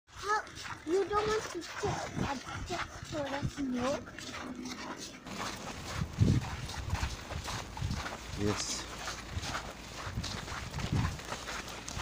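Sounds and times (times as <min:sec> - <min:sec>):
footsteps crunching in snow: 0:00.1 - 0:12.0.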